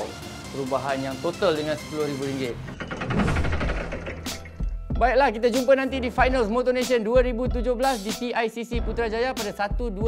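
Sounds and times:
sharp hit: 0:02.9 - 0:04.6.

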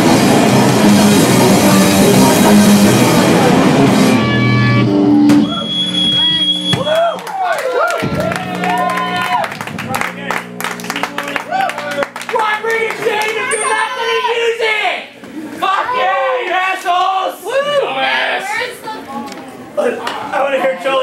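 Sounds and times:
punk band playing loud: 0:00.0 - 0:07.0, 0:07.9 - 0:13.7
people talking and shouting: 0:00.0 - 0:21.0
amplifier hum and ringing: 0:08.0 - 0:14.6.

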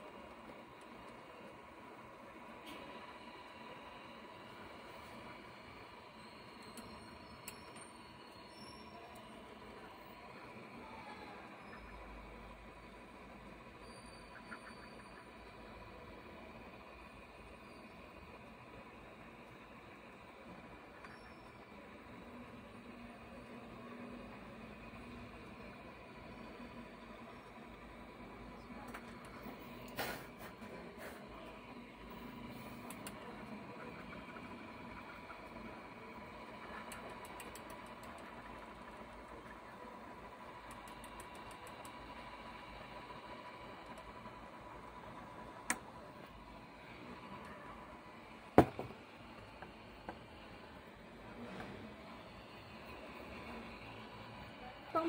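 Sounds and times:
faint steady tone: 0:00.0 - 0:55.0
hot-air gun blowing hiss: 0:29.9 - 0:31.2
sharp clicks: 0:32.8 - 0:33.2, 0:36.8 - 0:38.3, 0:40.6 - 0:42.0
circuit board knock: 0:48.6 - 0:49.0.

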